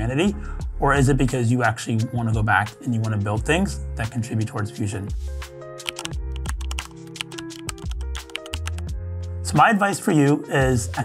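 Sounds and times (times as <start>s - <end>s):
background music with bass notes: 0.0s - 11.0s
keyboard typing clicks: 5.8s - 8.9s.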